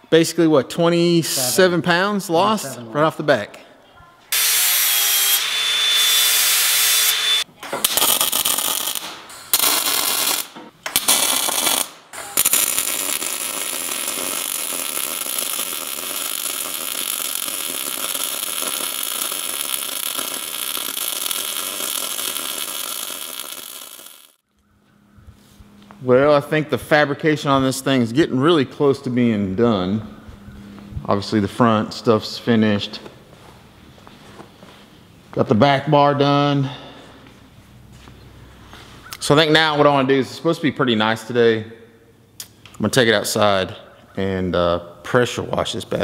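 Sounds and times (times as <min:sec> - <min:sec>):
power tool whining: 0:04.3 - 0:07.5
welder sizzling: 0:04.3 - 0:24.4.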